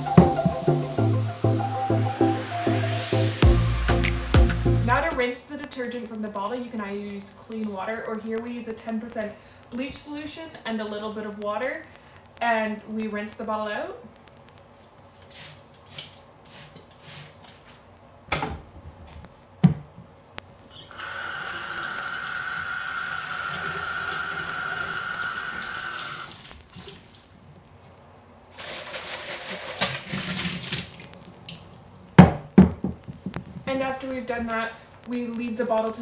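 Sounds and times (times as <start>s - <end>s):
spray bottle squirts: 15.2s - 17.4s
knocks on plastic bottle: 32.2s - 33.3s.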